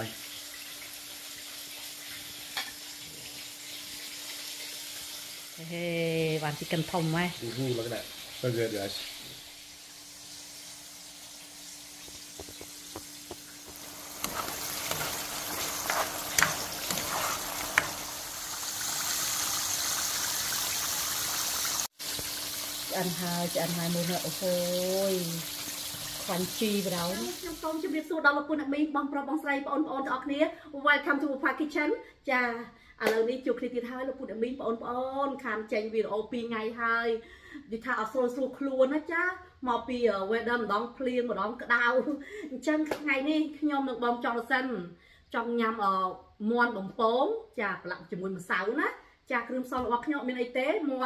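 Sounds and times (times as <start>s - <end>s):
food deep-frying in oil: 0.0s - 28.1s.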